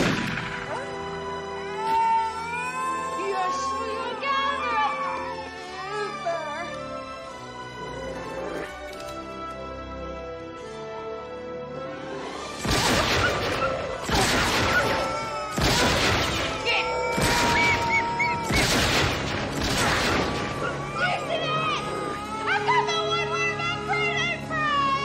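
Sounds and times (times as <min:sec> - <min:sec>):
film soundtrack music: 0:00.0 - 0:25.0
loud bangs: 0:12.6 - 0:20.6
wavering rising and falling cries: 0:13.2 - 0:18.6, 0:20.4 - 0:25.0.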